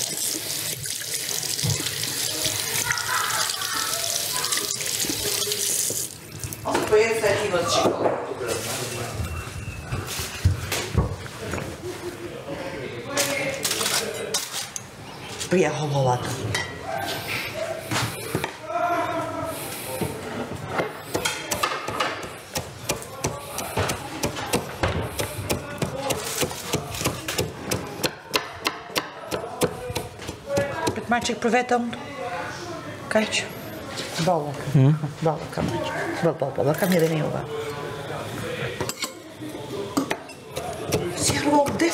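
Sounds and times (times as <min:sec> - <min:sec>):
people talking: 0:02.3 - 0:05.7, 0:34.2 - 0:41.9.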